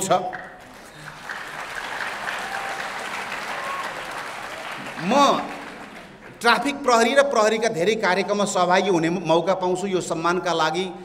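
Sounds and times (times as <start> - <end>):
audience applauding: 0.6 - 6.4.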